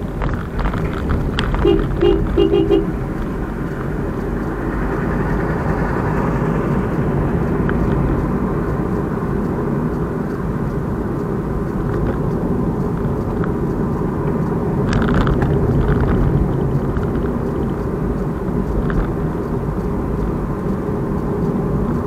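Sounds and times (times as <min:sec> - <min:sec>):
road and engine noise in car: 0:00.0 - 0:22.0
car horn toots: 0:01.5 - 0:03.1.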